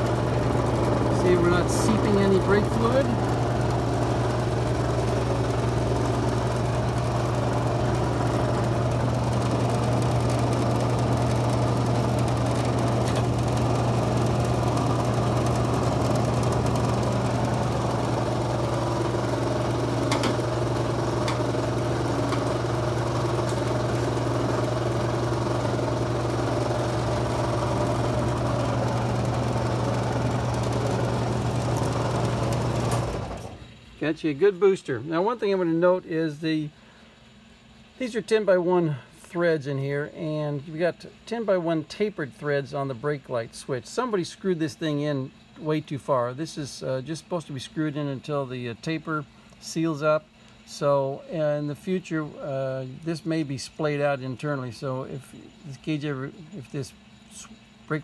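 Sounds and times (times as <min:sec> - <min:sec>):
machine motor humming: 0:00.0 - 0:36.0.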